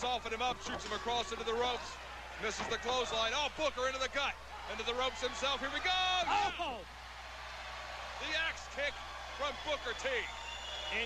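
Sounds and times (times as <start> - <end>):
arena crowd noise: 0.0 - 11.0
commentator exclaiming: 5.7 - 6.8.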